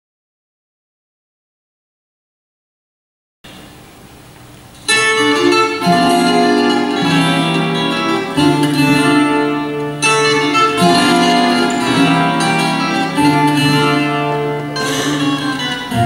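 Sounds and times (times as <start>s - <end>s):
faint hall noise: 3.5s - 16.0s
plucked string ensemble playing: 4.8s - 16.0s.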